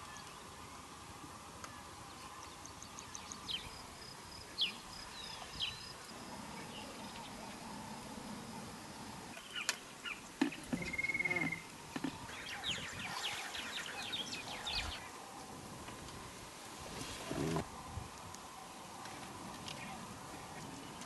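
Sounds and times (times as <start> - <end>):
faint bush ambience: 0.0 - 21.0
wild birds calling: 4.5 - 15.2
high bird trill: 10.8 - 11.7.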